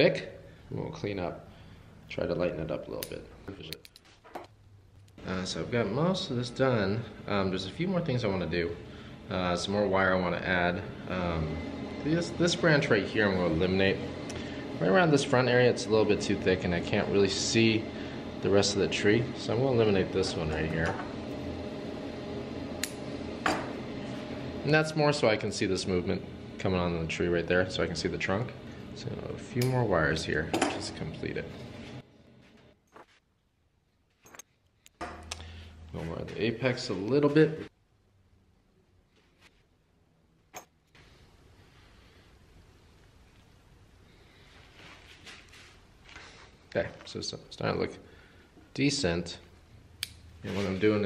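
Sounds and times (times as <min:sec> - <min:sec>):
low room hum: 0:00.0 - 0:51.0.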